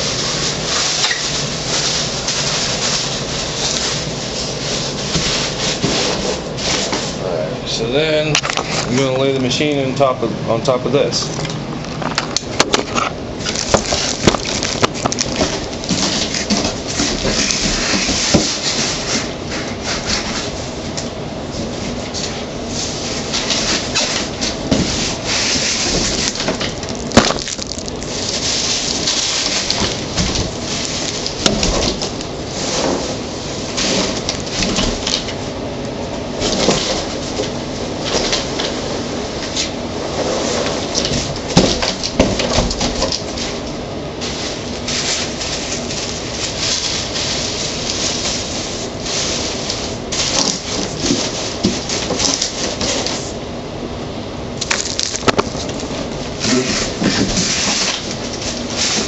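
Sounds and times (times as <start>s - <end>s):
plastic wrapping rustling: 0.0s - 7.2s, 11.3s - 20.6s, 21.5s - 35.5s, 36.2s - 53.4s, 54.6s - 59.0s.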